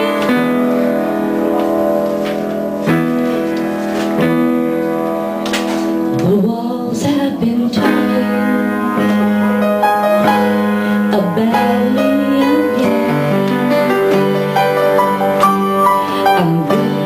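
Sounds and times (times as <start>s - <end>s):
bending sliding guitar notes: 7.8s - 17.0s.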